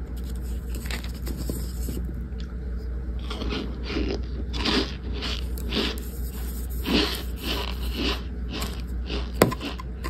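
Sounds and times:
crunchy chewing: 0:03.2 - 0:10.0.

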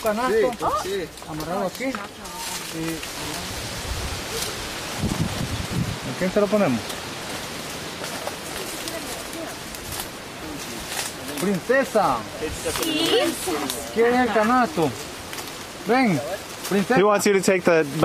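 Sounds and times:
leaves and branches rustling: 0:00.0 - 0:18.0.

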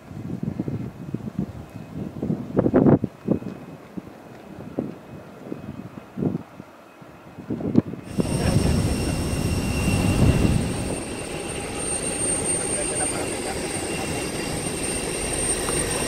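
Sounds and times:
wind buffeting microphone: 0:00.0 - 0:16.0
distant jet airliner whine: 0:03.2 - 0:16.0.

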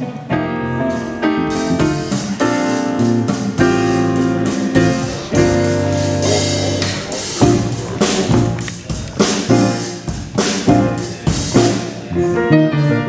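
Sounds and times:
piano chords: 0:00.0 - 0:11.2
drums: 0:00.0 - 0:12.5
electric bass: 0:00.5 - 0:13.0.

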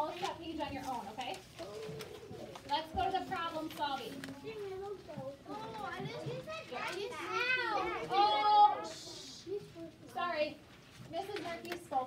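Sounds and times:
young children talking: 0:01.5 - 0:12.0.

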